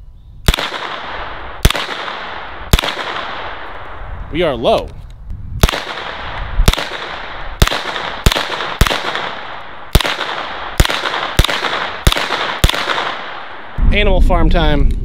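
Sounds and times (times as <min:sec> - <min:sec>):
rifle single shots with echo: 0:00.5 - 0:04.1, 0:05.6 - 0:13.8.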